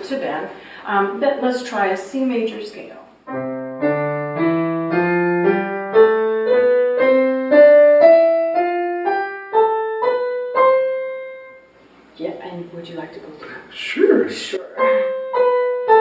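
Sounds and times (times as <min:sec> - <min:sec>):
digital piano playing a scale: 0:03.3 - 0:11.7, 0:14.7 - 0:16.0.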